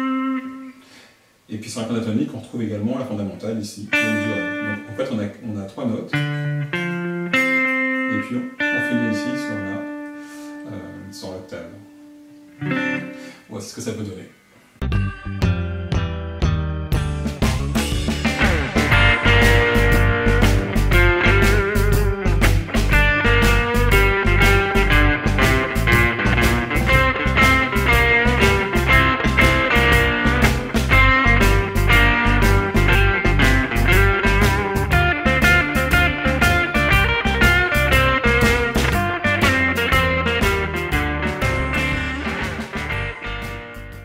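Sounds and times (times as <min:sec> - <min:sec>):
electric guitar blues lead: 0:00.0 - 0:01.0, 0:03.9 - 0:05.2, 0:06.1 - 0:11.2, 0:11.8 - 0:13.5, 0:17.2 - 0:44.0
backing track with drums and bass: 0:14.8 - 0:44.0.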